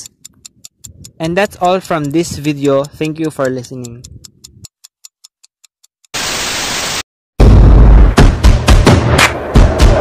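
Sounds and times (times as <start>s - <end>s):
hissing static: 6.2s - 7.0s.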